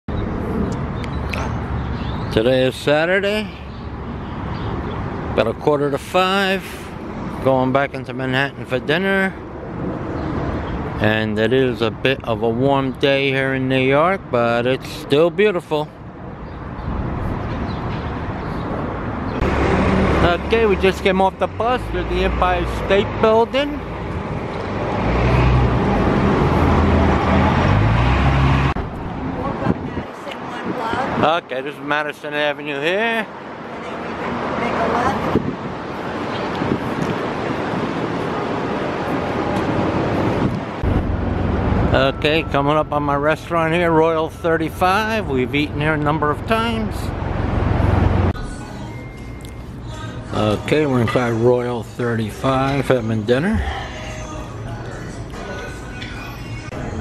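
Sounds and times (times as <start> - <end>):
low street rumble: 0.1 - 57.0
vehicle passing: 16.1 - 32.3, 43.0 - 48.6
wind buffeting microphone: 28.8 - 31.2, 35.0 - 41.9
heavy low rumble: 39.7 - 42.4.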